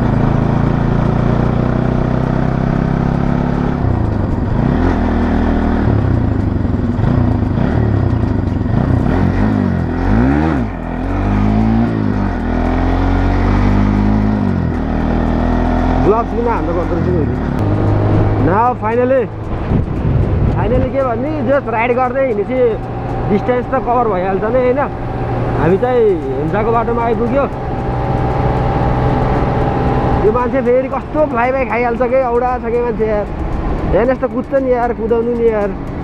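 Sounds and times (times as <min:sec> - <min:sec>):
motorcycle engine revving: 0:00.0 - 0:36.0.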